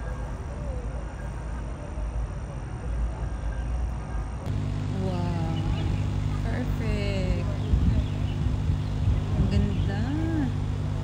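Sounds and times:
distant traffic rumble: 0.0 - 11.0
faint voices: 0.0 - 11.0
low engine hum: 3.8 - 11.0.

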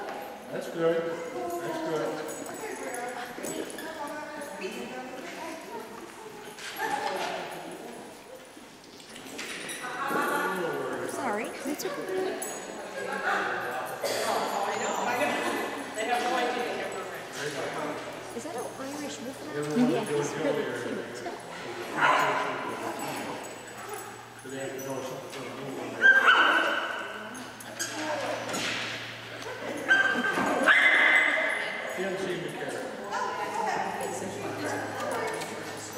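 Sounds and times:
people talking indistinctly: 11.1 - 13.1
puppy yipping: 26.0 - 27.0, 29.8 - 31.6.

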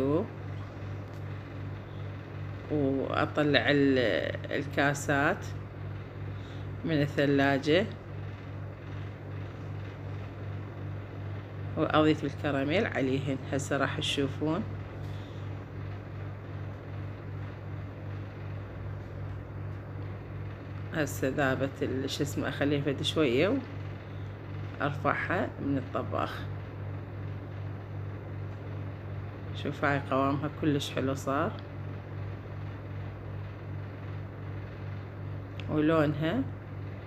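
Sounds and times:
low machine hum: 0.0 - 37.0.

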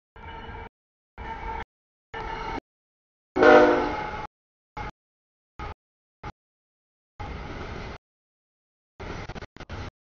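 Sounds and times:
locomotive air horn: 3.4 - 4.3.

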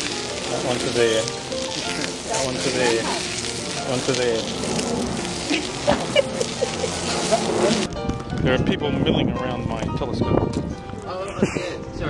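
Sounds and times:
sausages sizzling on hotplate: 0.0 - 8.0.

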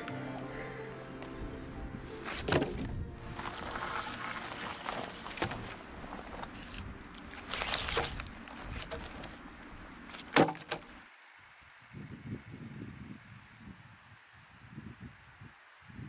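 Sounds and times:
soft background music: 0.0 - 6.8
wood rustling: 2.0 - 11.0
wood knocking on log pile: 2.3 - 3.0, 5.2 - 5.8, 10.2 - 10.9.

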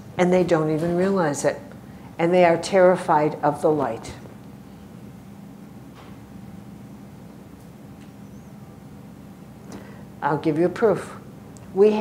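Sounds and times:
steady low hum: 0.0 - 12.0
short breath: 9.7 - 10.1.

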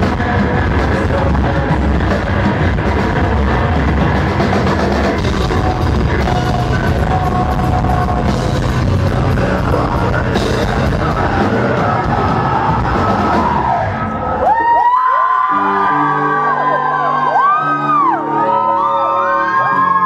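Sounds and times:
live heavy metal band: 0.0 - 20.0.

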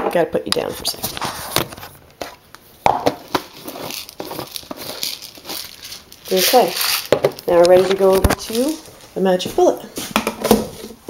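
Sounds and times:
rustling scrapes: 0.7 - 2.0, 3.3 - 9.2.

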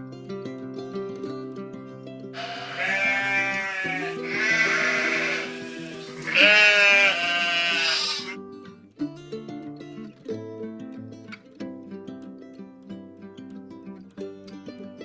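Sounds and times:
acoustic guitar music: 0.0 - 15.0
sheep bleating: 2.4 - 8.4.

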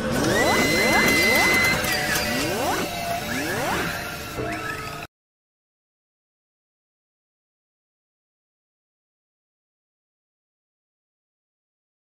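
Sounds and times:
held high synthetic tone: 0.0 - 5.0
electronic intro music: 0.1 - 4.9.

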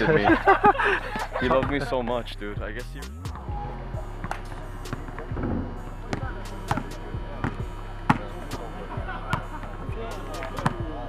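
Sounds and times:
low hum: 0.0 - 11.0
basketballs bouncing on court: 4.0 - 11.0.

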